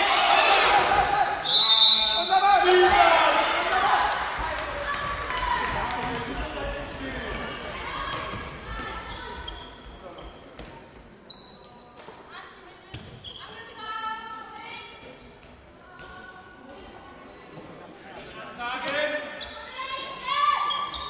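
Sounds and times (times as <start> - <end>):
people shouting in a hall: 0.0 - 9.4
ball bouncing on court floor: 12.9 - 13.2.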